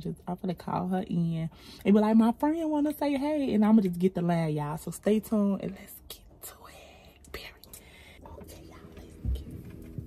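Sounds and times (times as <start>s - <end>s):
dull low thump: 9.0s - 10.0s.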